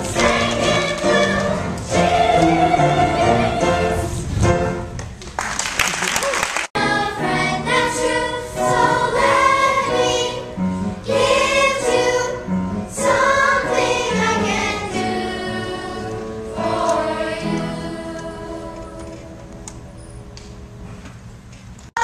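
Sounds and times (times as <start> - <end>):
young chorus singing: 0.0 - 4.7, 6.8 - 19.5.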